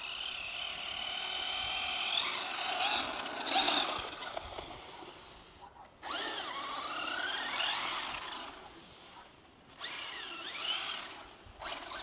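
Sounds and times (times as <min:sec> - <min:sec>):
toy truck electric motor whining: 0:00.0 - 0:04.6, 0:06.0 - 0:08.6, 0:09.8 - 0:12.0
wheels spinning on ice: 0:00.0 - 0:05.3, 0:06.0 - 0:08.6, 0:09.7 - 0:12.0.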